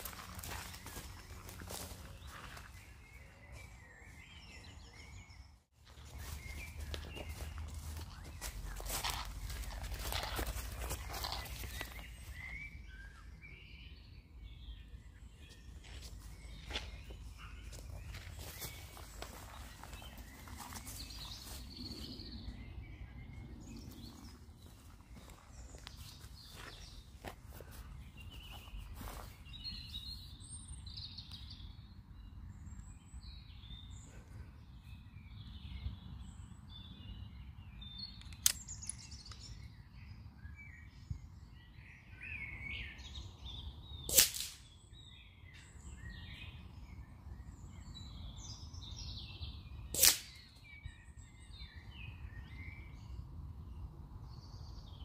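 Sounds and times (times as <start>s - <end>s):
birds chirping and singing: 0.0s - 55.0s.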